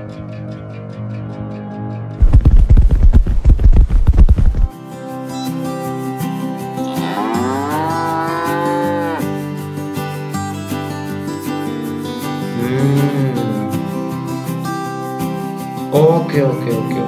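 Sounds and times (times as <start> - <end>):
low rumble with rapid thumps: 2.2 - 4.7
background music: 4.7 - 17.0
cow mooing: 6.8 - 9.4.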